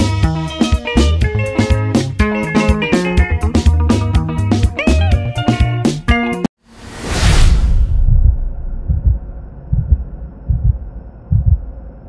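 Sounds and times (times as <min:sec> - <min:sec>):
heartbeat double thumps: 0:07.7 - 0:11.8.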